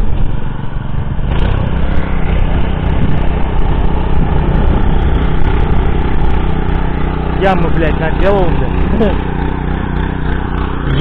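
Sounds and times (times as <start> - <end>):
tiller engine running: 0.0 - 11.0
tines churning soil: 0.0 - 11.0.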